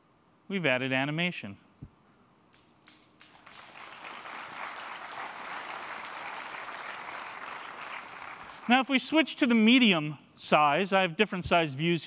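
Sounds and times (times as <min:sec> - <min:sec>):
audience applauding: 0:02.8 - 0:08.9.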